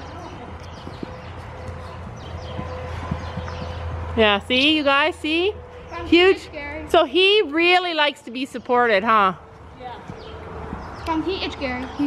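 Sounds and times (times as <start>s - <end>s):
horse hoofbeats on soft dirt: 0.0s - 5.9s, 9.1s - 12.0s.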